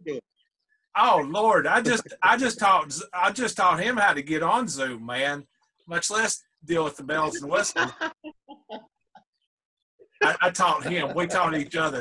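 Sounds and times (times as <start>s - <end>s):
man laughing: 7.2s - 8.8s, 10.0s - 11.7s.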